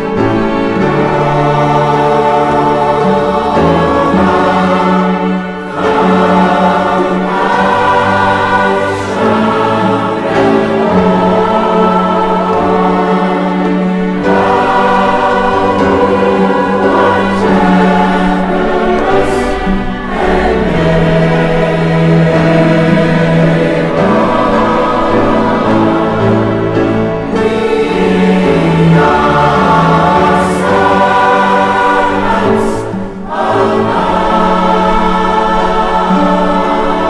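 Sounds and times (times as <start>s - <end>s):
choir singing a hymn: 0.0s - 37.0s
piano: 0.0s - 37.0s
strings: 0.0s - 37.0s.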